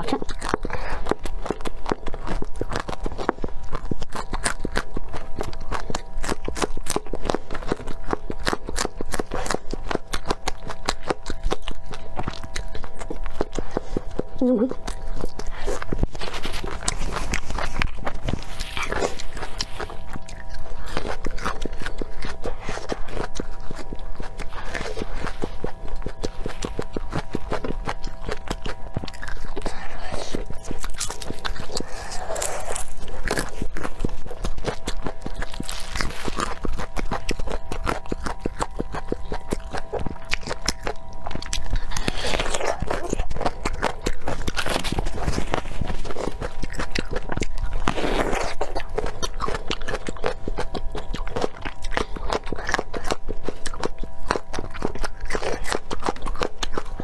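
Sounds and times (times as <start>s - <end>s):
chewing crisp vegetables: 0.0s - 57.0s.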